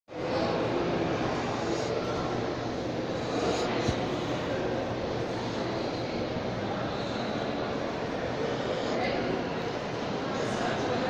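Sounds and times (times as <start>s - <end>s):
constant room drone: 0.1s - 11.0s
faint distant voices: 0.1s - 11.0s.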